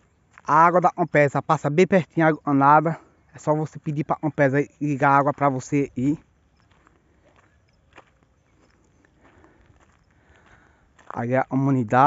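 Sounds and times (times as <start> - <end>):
footsteps on stony dirt: 0.0 - 1.0, 4.9 - 12.0.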